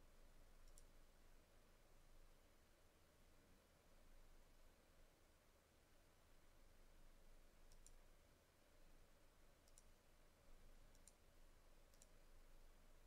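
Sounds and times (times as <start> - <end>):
faint mouse clicks: 0.6 - 1.0, 7.6 - 8.1, 9.6 - 10.0, 10.8 - 12.3.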